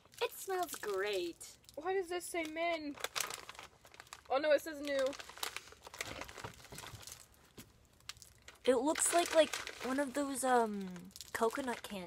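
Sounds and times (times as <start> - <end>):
plastic candy wrappers crinkling: 0.0 - 12.0.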